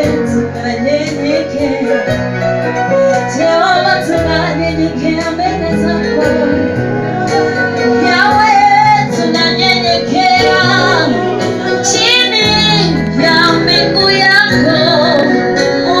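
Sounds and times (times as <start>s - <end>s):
held backing notes: 0.0s - 16.0s
woman singing lead: 0.0s - 16.0s
worship team singing: 7.2s - 13.7s.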